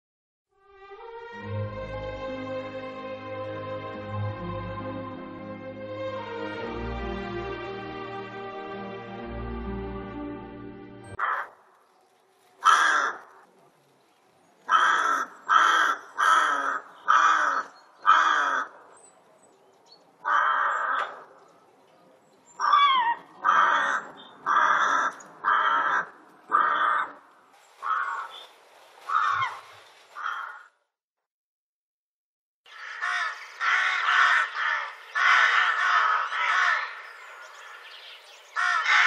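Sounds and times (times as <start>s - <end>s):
music: 0.5s - 11.2s
rook cawing harshly: 11.2s - 11.6s, 12.6s - 13.4s, 14.7s - 18.8s, 20.2s - 21.3s, 22.6s - 27.2s, 27.8s - 28.4s, 29.1s - 29.6s, 30.2s - 30.8s, 32.7s - 37.9s, 38.6s - 39.0s.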